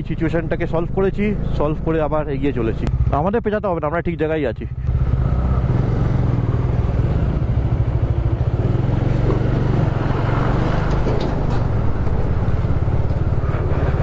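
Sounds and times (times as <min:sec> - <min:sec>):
motorcycle engine rumbling: 0:00.0 - 0:14.0
road and wind noise: 0:00.0 - 0:14.0
truck passing: 0:04.8 - 0:14.0.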